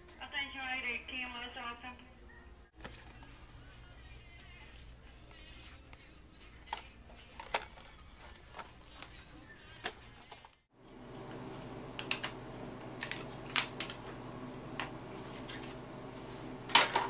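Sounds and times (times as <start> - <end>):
low hum: 10.8 - 17.0.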